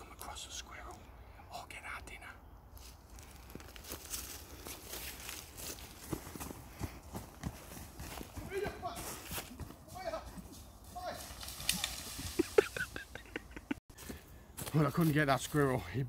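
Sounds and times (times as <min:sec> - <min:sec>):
running footsteps through dry leaves: 0:02.8 - 0:13.1, 0:14.0 - 0:15.9.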